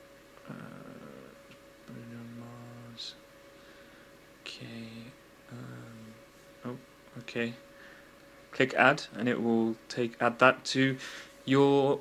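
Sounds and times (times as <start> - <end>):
faint steady hum: 0.0 - 12.0
man saying uh: 0.4 - 3.2, 4.5 - 7.6
person speaking: 0.4 - 3.2, 4.4 - 7.6, 8.5 - 12.0.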